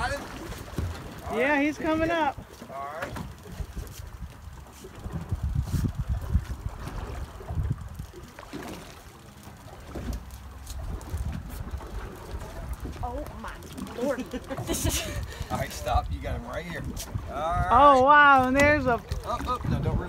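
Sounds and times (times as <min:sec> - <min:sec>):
wind buffeting microphone: 0:00.0 - 0:08.8, 0:09.6 - 0:20.0.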